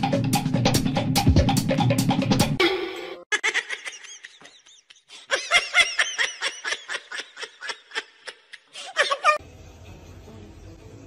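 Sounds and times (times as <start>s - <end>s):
high-pitched giggling: 2.6s - 9.4s.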